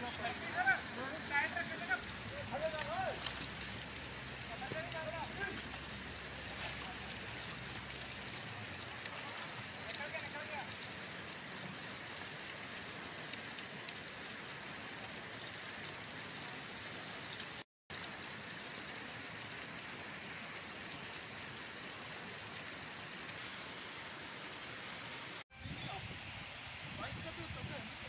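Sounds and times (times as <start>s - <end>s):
river rushing: 0.0s - 12.8s.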